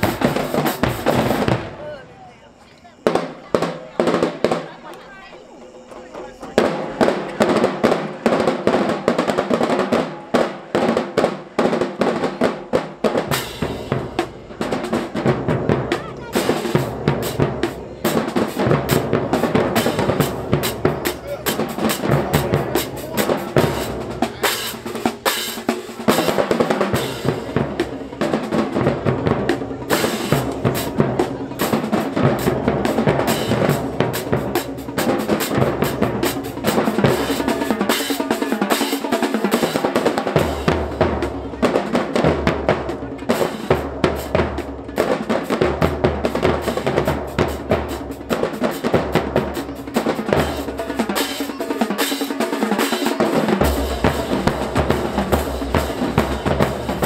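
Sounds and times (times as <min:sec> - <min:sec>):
drumline cadence: 0:00.0 - 0:57.0.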